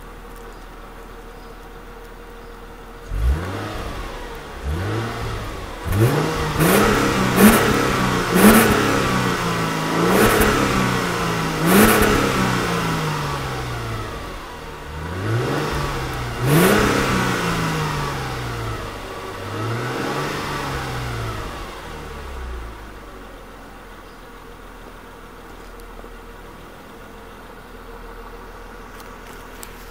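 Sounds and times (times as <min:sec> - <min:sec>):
engine revving at exhaust: 0:03.0 - 0:23.1.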